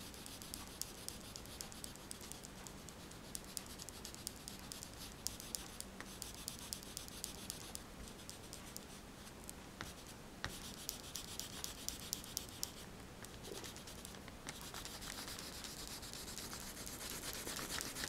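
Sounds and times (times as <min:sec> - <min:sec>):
oil pastel scratching on paper: 0:00.0 - 0:09.0, 0:09.8 - 0:18.0.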